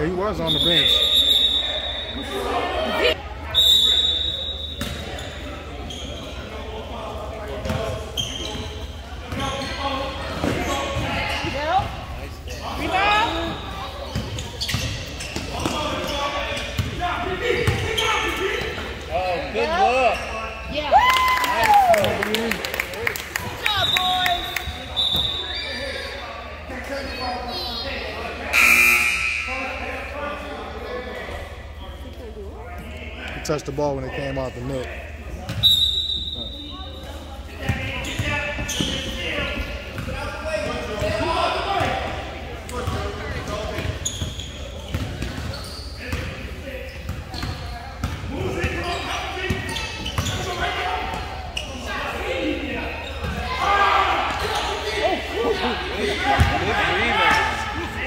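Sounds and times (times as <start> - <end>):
voices in echoing hall: 0.0 - 58.0
referee's whistle: 0.4 - 2.5, 3.5 - 5.3, 23.7 - 26.0, 28.5 - 29.8, 35.6 - 36.8.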